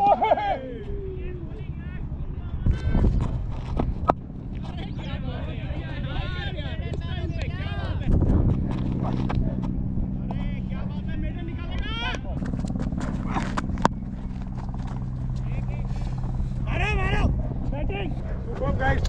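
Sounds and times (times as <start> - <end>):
players calling and shouting: 0.0 - 19.0
steady low hum: 0.0 - 19.0.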